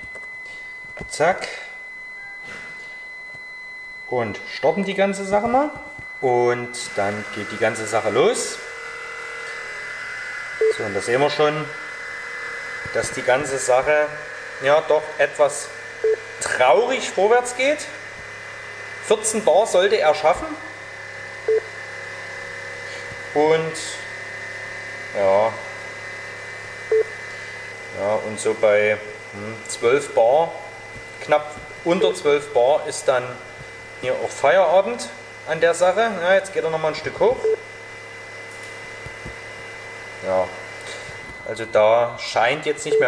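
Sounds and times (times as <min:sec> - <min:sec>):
short tone: 0:00.0 - 0:11.4
air compressor humming: 0:00.0 - 0:43.0.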